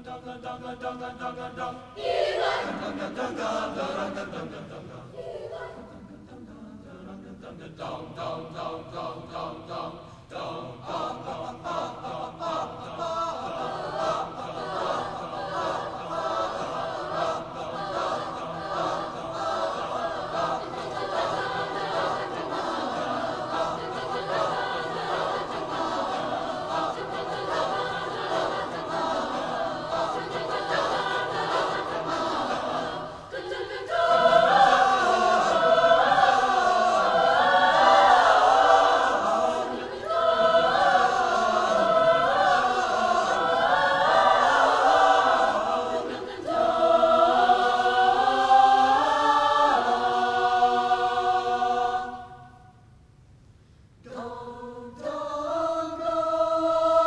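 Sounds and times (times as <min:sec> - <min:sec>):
mixed choir singing folk song: 0:00.0 - 0:52.8, 0:54.0 - 0:57.0.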